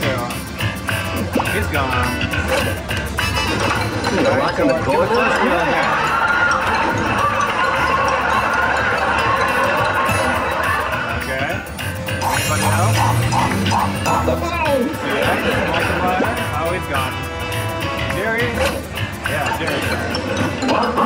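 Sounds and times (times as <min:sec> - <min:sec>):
crowd murmur: 0:00.0 - 0:21.0
slot machine bonus sounds: 0:00.9 - 0:21.0
voice-like sounds: 0:10.2 - 0:16.9.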